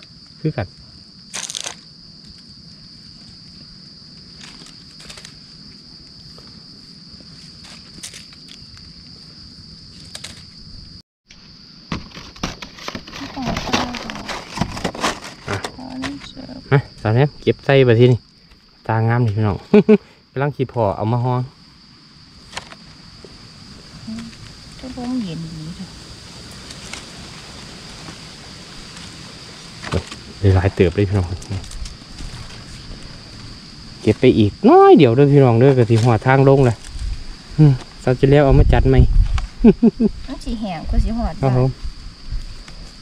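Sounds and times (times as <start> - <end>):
insect droning: 0.0 - 43.0
outdoor background hiss: 0.0 - 43.0
dry leaves crackling: 1.3 - 1.8, 4.2 - 5.8, 22.5 - 34.2
constant high-pitched tone: 22.2 - 43.0.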